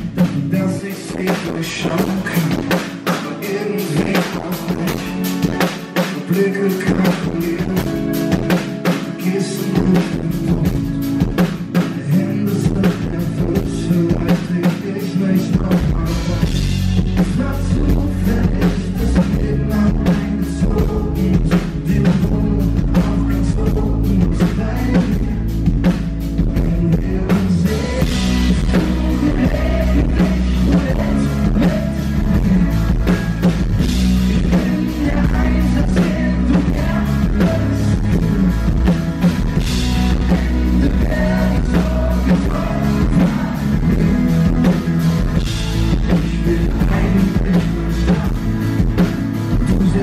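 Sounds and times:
bass: 0:00.0 - 0:50.0
drum kit beat: 0:00.0 - 0:50.0
electric guitar: 0:00.0 - 0:50.0
keyboards: 0:00.0 - 0:50.0
male lead vocal: 0:00.0 - 0:50.0
man singing: 0:00.0 - 0:50.0.

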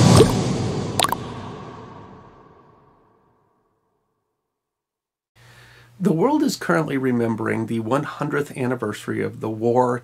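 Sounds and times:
droplet-like plop: 0:00.0 - 0:00.4, 0:01.0 - 0:01.2.

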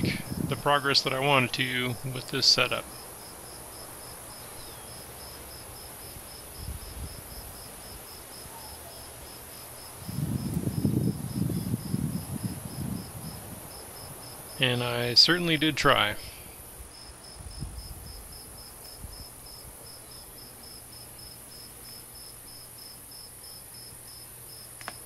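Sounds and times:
cricket chirping: 0:00.0 - 0:25.0
low uneven noise: 0:00.0 - 0:25.0.

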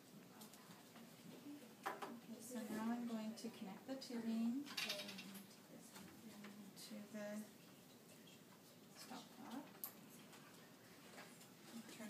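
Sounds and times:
faint handling sounds: 0:07.4 - 0:12.0.

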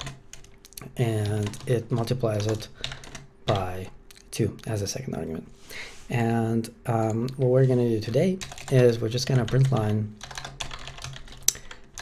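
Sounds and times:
computer keyboard typing: 0:00.0 - 0:03.9, 0:07.0 - 0:12.0.

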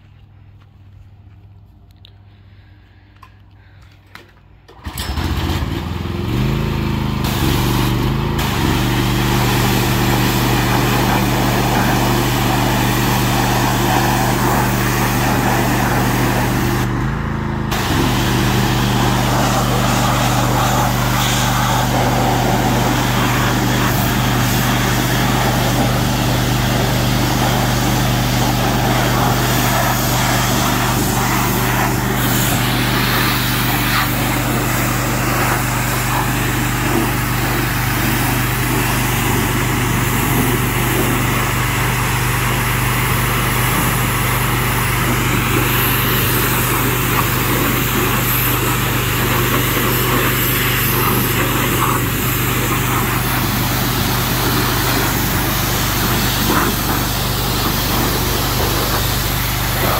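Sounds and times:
pressure washer engine running: 0:04.7 - 0:59.9
high-pressure water spray hissing: 0:07.2 - 0:16.9, 0:17.7 - 0:59.9.

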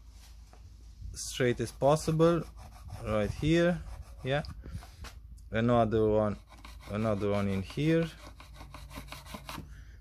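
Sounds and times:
pencil scratching on wooden board: 0:01.6 - 0:04.5, 0:06.1 - 0:09.7.

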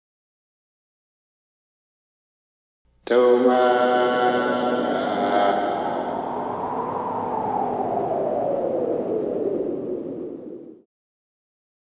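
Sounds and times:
whoosh with falling pitch: 0:05.2 - 0:10.8.

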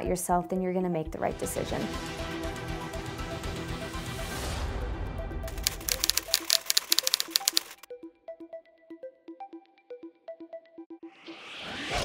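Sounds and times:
soft music: 0:00.0 - 0:11.1
typewriter key clicks: 0:05.5 - 0:07.8.

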